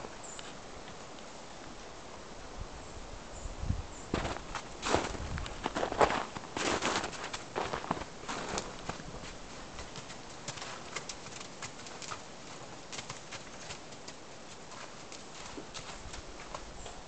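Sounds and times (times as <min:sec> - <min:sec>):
hooves crunching on snow: 0:04.1 - 0:17.0.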